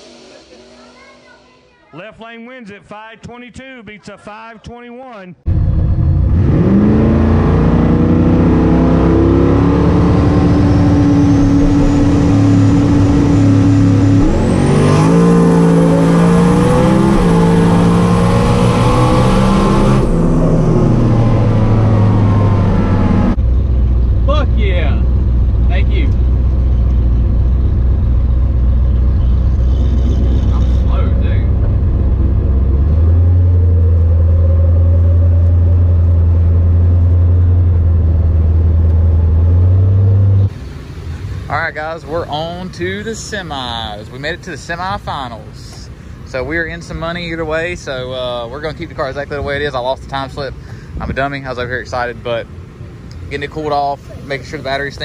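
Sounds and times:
car engine running: 0:05.5 - 0:55.0.

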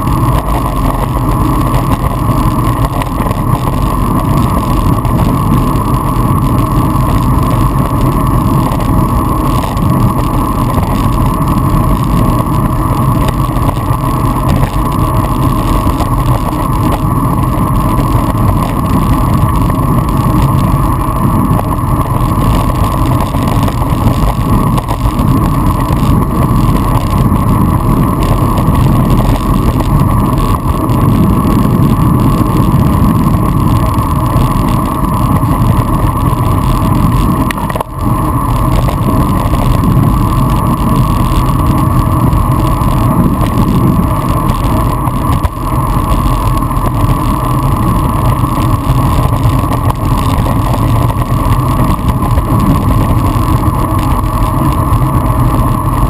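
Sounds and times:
tyre and road noise: 0:00.0 - 0:56.0
wind rushing over microphone: 0:00.0 - 0:56.0.

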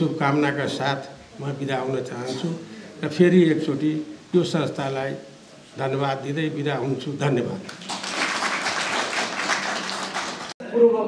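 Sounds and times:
audience applauding: 0:07.7 - 0:10.6.

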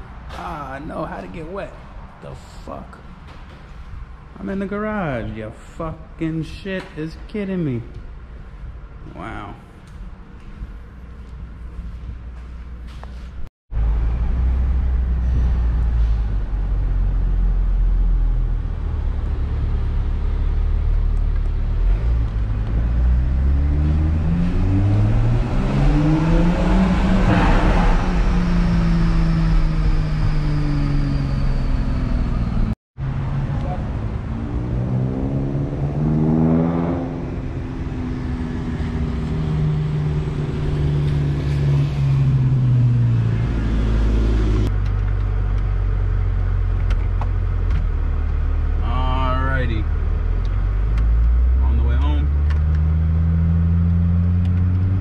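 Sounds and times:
car engine accelerating: 0:13.7 - 0:55.0.

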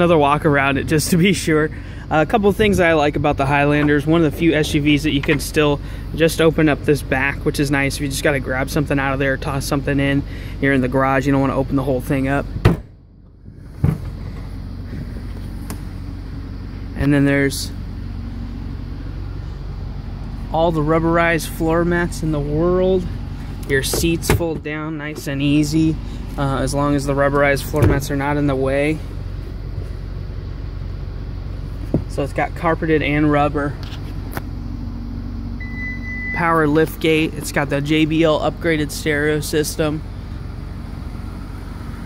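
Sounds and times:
low pulsing mechanical hum: 0:00.0 - 0:42.0
vehicle rumble: 0:00.0 - 0:42.0
liftgate warning beep: 0:35.6 - 0:36.6.

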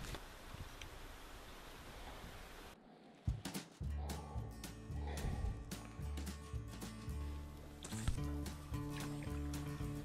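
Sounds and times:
outdoor ambience hiss: 0:00.0 - 0:03.8.

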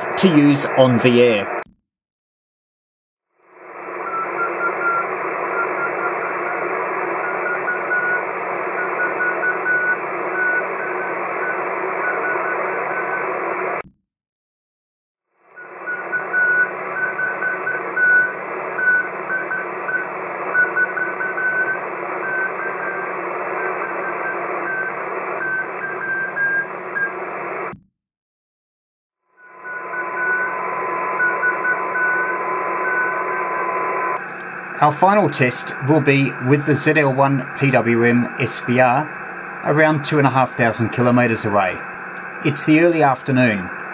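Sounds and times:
receiver hiss: 0:00.0 - 0:01.6, 0:03.6 - 0:13.8, 0:15.6 - 0:27.8, 0:29.5 - 0:43.9
morse code tone: 0:04.0 - 0:06.2, 0:07.1 - 0:13.2, 0:15.6 - 0:27.2, 0:29.4 - 0:34.2.

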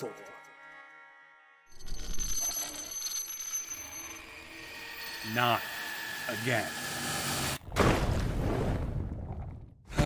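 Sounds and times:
high-pitched electronic whine: 0:00.0 - 0:07.6.

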